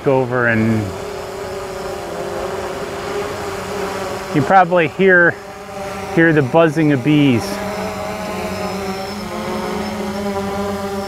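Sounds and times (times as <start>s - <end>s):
drone propellers buzzing: 0.0s - 11.0s.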